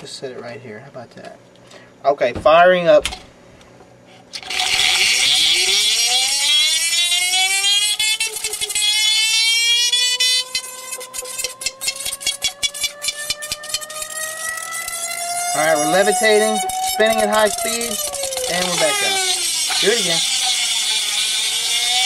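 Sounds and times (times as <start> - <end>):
rising whine of spinning ball: 4.4 - 22.0.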